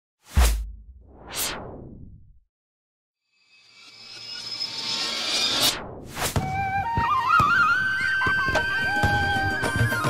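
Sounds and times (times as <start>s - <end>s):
short swish: 0.2s - 2.1s
whoosh: 0.2s - 2.4s.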